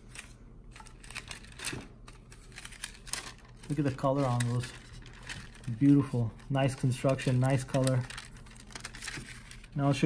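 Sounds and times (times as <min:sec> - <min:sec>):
paper rustling: 0:00.1 - 0:10.0.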